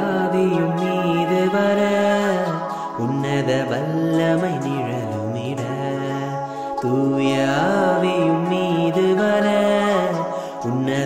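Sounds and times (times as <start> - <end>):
musical accompaniment: 0.0 - 11.0
person singing long wavering notes: 0.0 - 11.0.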